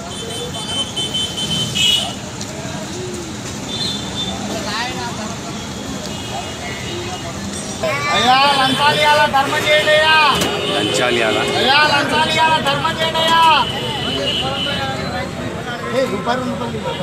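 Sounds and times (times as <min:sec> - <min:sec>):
crowd voices: 0:00.0 - 0:17.0
roadside traffic: 0:00.0 - 0:17.0.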